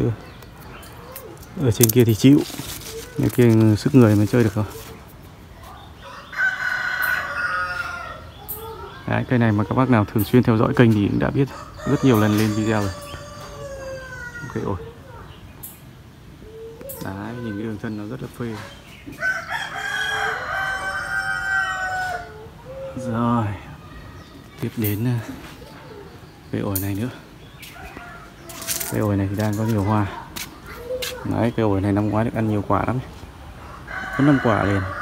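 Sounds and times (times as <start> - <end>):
rooster crowing: 6.0 - 8.3, 11.4 - 14.7, 19.2 - 22.9, 33.6 - 35.0.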